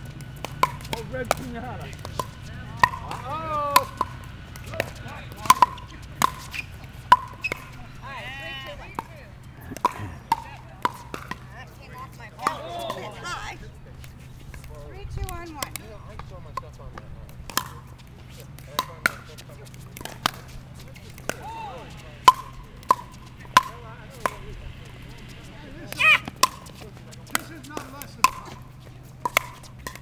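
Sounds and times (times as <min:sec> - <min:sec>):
pickleball being struck: 0:00.0 - 0:07.8, 0:08.7 - 0:13.2, 0:14.0 - 0:30.0
paddle striking plastic ball: 0:00.2 - 0:06.5, 0:09.7 - 0:11.4, 0:22.3 - 0:24.4, 0:26.2 - 0:28.6, 0:29.2 - 0:30.0
faint voices: 0:01.0 - 0:29.8.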